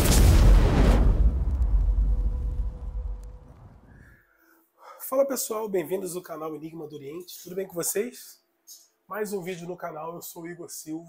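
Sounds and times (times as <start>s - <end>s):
low rumbling boom: 0.0s - 4.0s.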